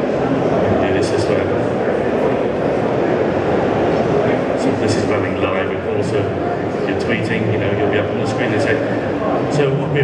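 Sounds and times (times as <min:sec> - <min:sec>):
crowd hubbub in a large hall: 0:00.0 - 0:10.0.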